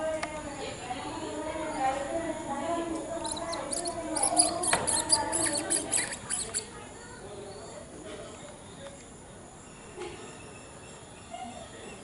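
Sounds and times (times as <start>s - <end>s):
animal squeaky chirps: 3.2s - 6.8s.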